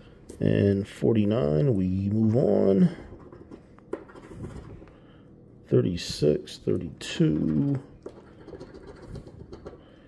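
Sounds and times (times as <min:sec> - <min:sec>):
coin scratching a ticket: 0:08.2 - 0:09.7.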